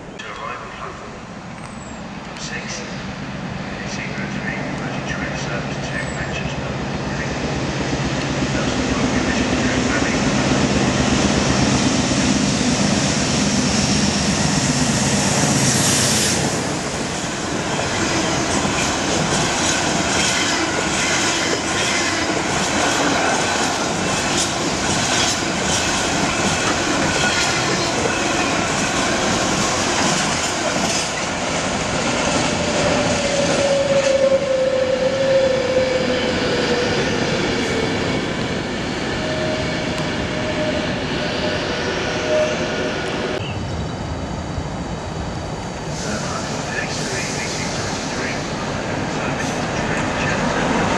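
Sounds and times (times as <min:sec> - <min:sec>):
locomotive passing: 0:00.1 - 0:44.4, 0:45.5 - 0:50.9.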